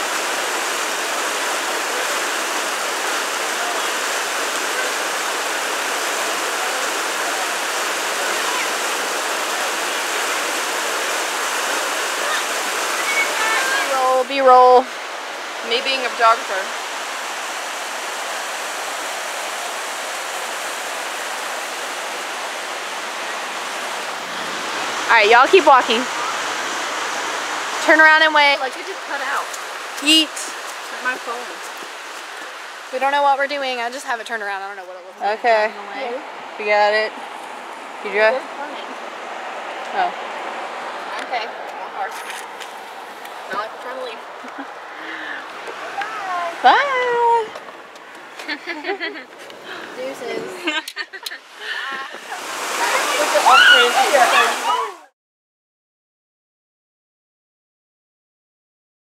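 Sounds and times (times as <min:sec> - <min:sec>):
creek water rushing over rock: 0:00.0 - 0:55.1.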